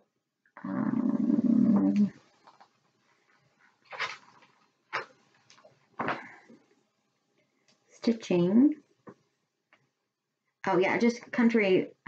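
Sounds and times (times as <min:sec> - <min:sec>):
magazine pages rustling: 0:02.3 - 0:06.4.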